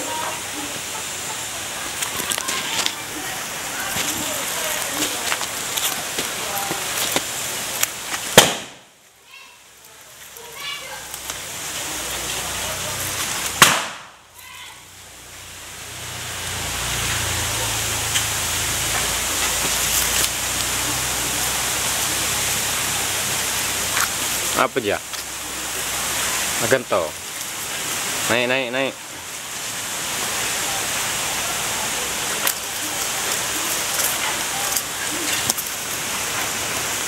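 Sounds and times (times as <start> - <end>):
background hiss: 0.0 - 37.0.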